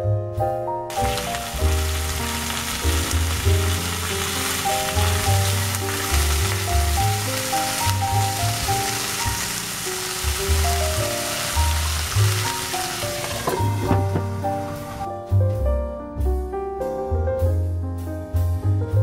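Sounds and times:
piano music: 0.0 - 19.0
meat sizzling in oil: 0.9 - 15.0.

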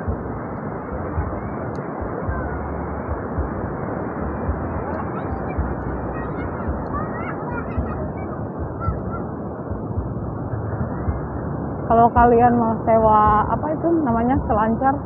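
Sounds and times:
beach surf: 0.0 - 15.0
distant voices calling out: 0.0 - 15.0
wind rumbling on microphone: 0.0 - 15.0.

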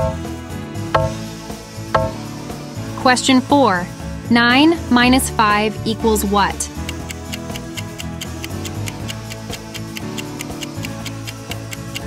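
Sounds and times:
countdown timer ticking: 0.0 - 0.3, 1.0 - 1.2, 2.0 - 2.2, 6.8 - 12.0
light background music: 0.0 - 12.0.

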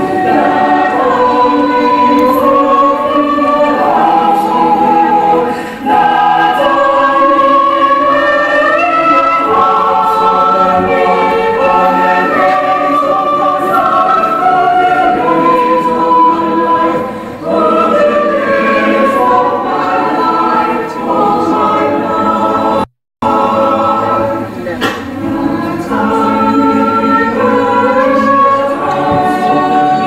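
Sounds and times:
congregation singing a hymn: 0.0 - 30.0.

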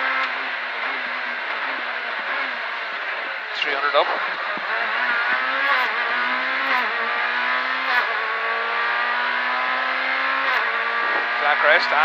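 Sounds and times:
car engine accelerating through gears: 0.0 - 12.0.

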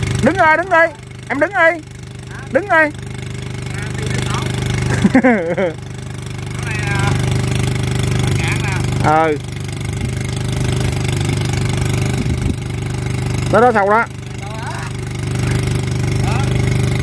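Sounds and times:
diesel engine idling: 0.0 - 17.0
person calling out: 0.2 - 3.0, 6.5 - 7.3
laughter: 4.8 - 5.8.

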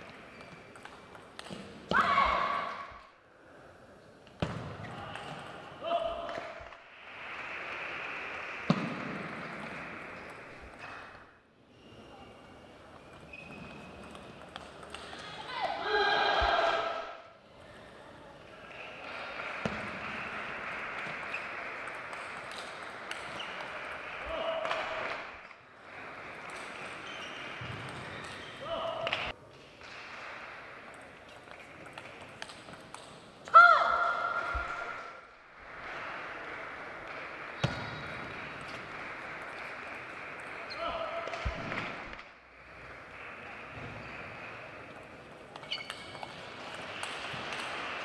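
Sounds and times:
person shouting: 33.5 - 34.2.

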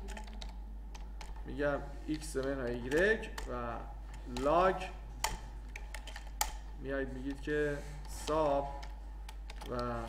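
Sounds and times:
computer keyboard keystrokes: 0.0 - 1.4, 2.2 - 6.6, 8.1 - 10.0.

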